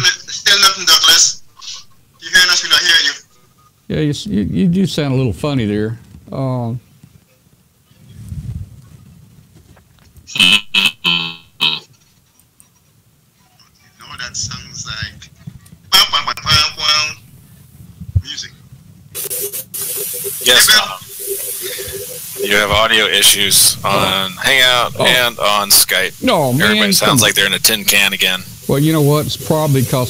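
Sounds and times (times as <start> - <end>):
distorted tinny voices: 0.0 - 4.2, 13.4 - 18.5, 19.2 - 30.0
hiss: 19.2 - 30.0.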